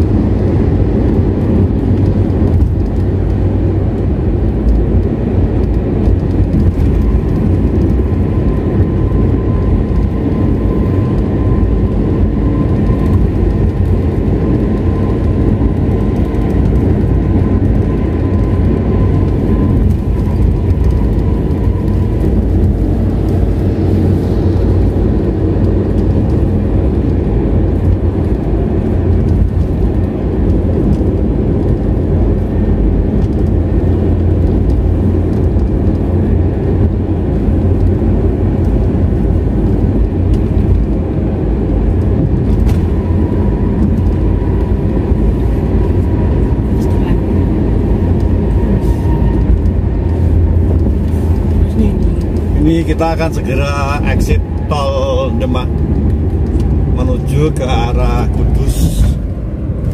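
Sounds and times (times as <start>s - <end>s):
car road noise from inside: 0.0s - 59.9s.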